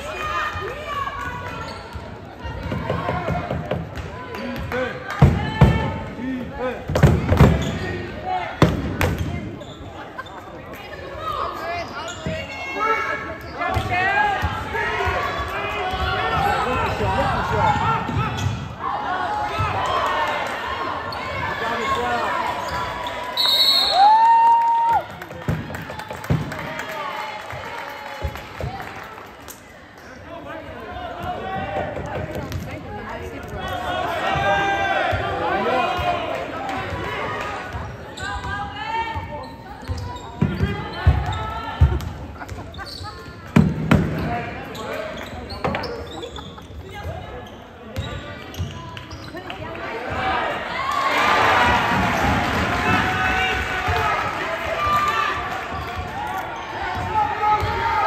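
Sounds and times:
people shouting and talking: 0.0s - 58.0s
high whistle blast: 23.4s - 24.1s.

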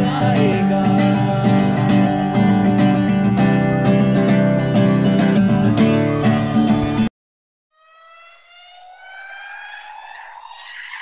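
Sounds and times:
electronic riser tone: 7.7s - 11.0s.

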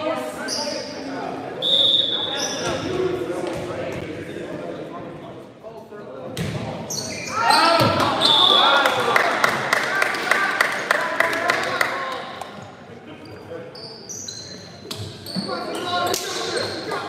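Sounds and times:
voices echoing in a gymnasium: 0.0s - 17.0s
referee's whistle blasts: 1.6s - 2.6s, 7.0s - 8.8s.

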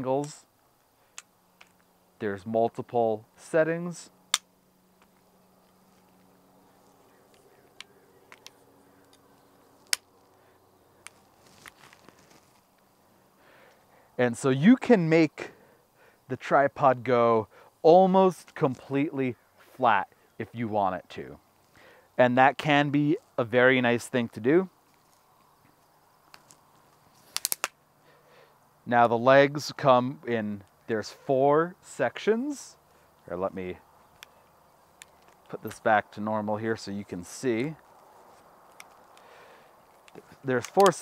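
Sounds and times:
handling rustle: 4.3s - 13.9s, 24.7s - 27.8s, 33.8s - 41.0s
tripod leg locks clicking: 7.2s - 10.1s, 27.3s - 27.8s, 40.0s - 41.0s.

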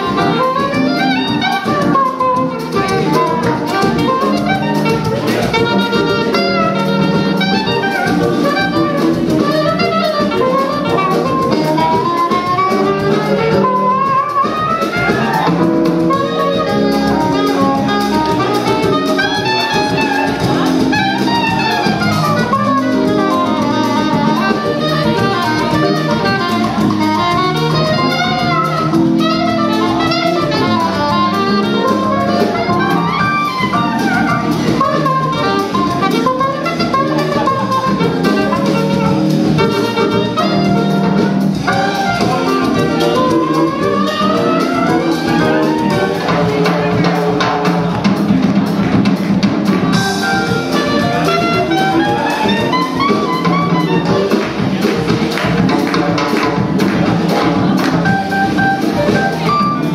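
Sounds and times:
drum kit: 0.0s - 59.9s
electric bass: 0.0s - 59.9s
saxophone melody: 0.0s - 59.9s.

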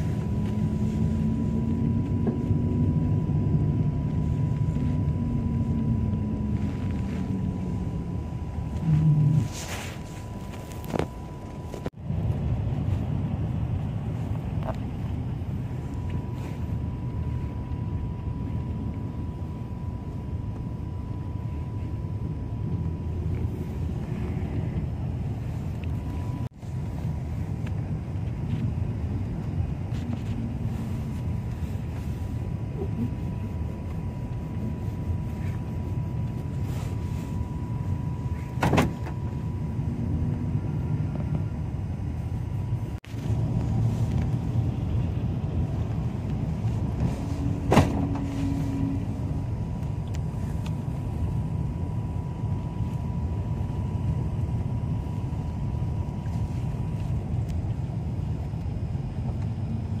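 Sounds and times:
engine and road rumble: 0.0s - 60.0s
faint high whine: 0.0s - 60.0s.

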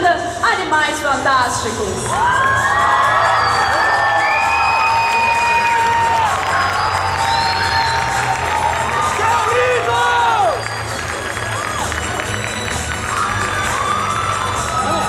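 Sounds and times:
audience cheering and whooping: 2.0s - 15.0s.

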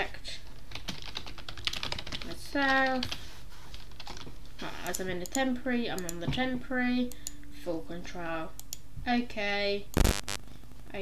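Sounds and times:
computer keyboard typing: 0.6s - 3.2s, 3.8s - 4.2s, 4.8s - 6.2s.

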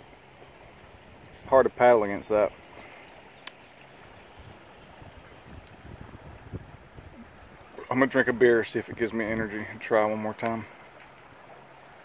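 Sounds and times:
river water washing past: 0.0s - 12.0s.

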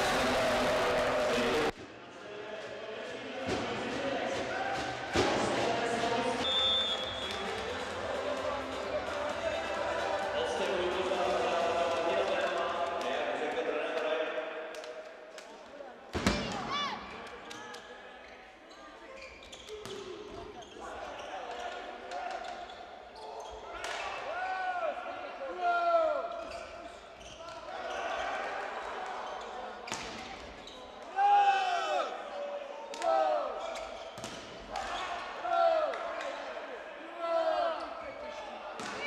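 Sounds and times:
crowd noise echoing: 0.0s - 19.0s, 19.7s - 39.0s.

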